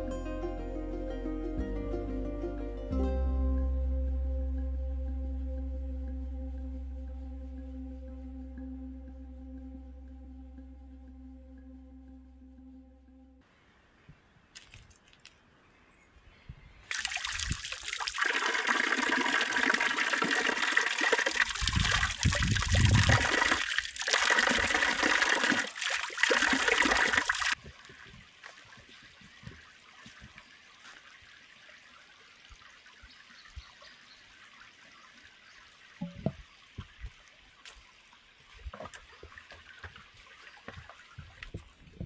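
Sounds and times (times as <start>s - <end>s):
water jet splashing: 16.9s - 27.6s.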